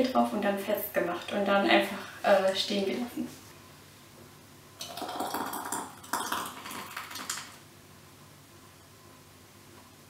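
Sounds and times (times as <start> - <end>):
jam pouring wet slopping: 4.8 - 7.6.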